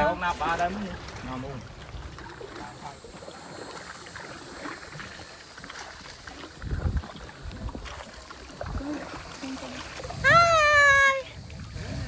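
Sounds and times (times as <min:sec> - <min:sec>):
paddle strokes in water: 0:00.0 - 0:12.0
water swishing along hull: 0:00.0 - 0:12.0.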